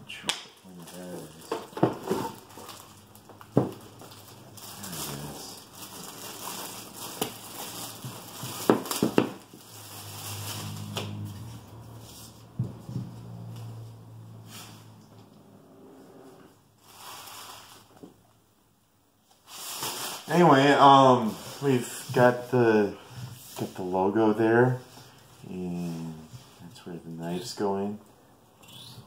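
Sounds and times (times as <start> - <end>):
plastic bag crinkling: 0.6 - 11.3.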